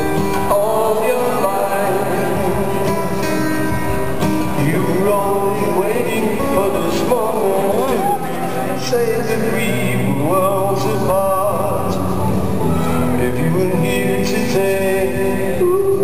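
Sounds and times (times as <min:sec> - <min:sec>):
distant acoustic guitar with echo: 0:00.0 - 0:16.0.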